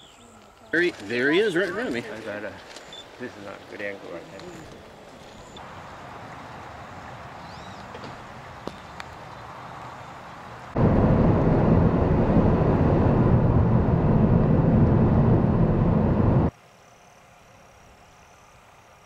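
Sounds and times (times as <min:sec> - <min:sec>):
quiet outdoor ambience: 0:00.0 - 0:19.0
car road and wind noise: 0:05.6 - 0:16.5.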